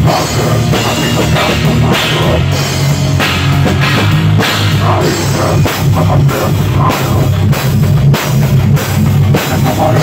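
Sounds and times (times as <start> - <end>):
bass guitar: 0.0 - 10.0
drums with cymbal crashes: 0.0 - 10.0
rock band playing loudly: 0.0 - 10.0.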